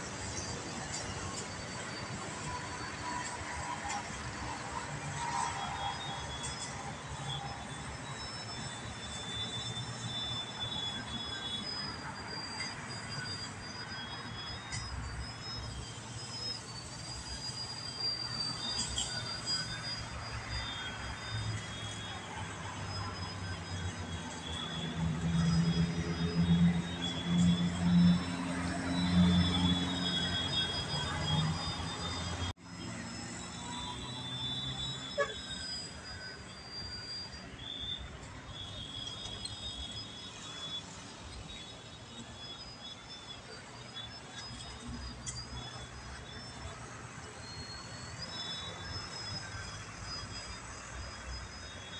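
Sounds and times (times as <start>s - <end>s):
model plane motor whine: 0.0s - 46.6s.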